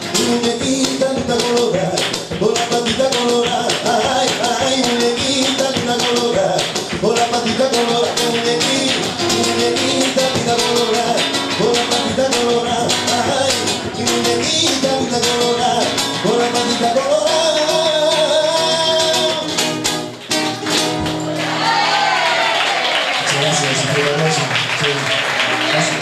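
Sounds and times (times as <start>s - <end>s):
man singing: 0.0s - 19.9s
strummed nylon-string guitar: 0.0s - 21.4s.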